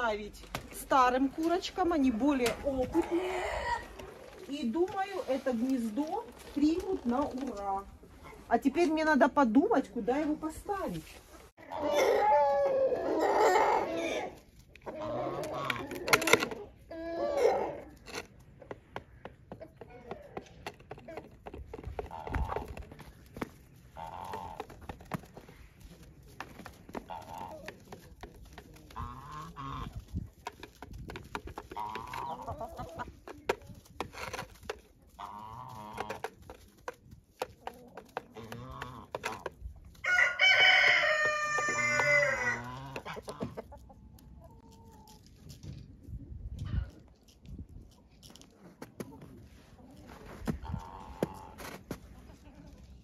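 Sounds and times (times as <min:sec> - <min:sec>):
poultry calling: 0:11.6 - 0:18.0, 0:21.8 - 0:25.6, 0:26.7 - 0:28.1, 0:28.8 - 0:30.2, 0:31.6 - 0:33.2, 0:35.1 - 0:36.5, 0:38.1 - 0:45.1, 0:50.5 - 0:51.6
rooster crowing: 0:40.0 - 0:42.6.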